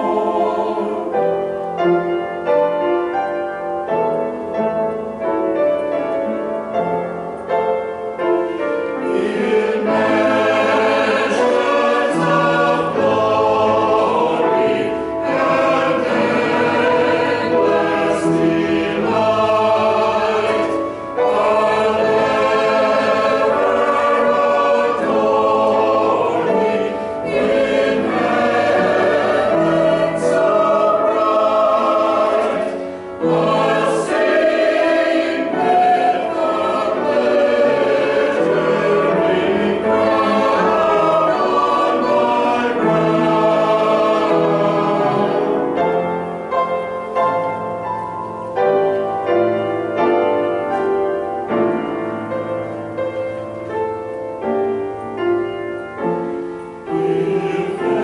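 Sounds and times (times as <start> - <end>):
mixed choir singing: 0.0 - 2.8, 6.3 - 47.8, 56.1 - 58.0.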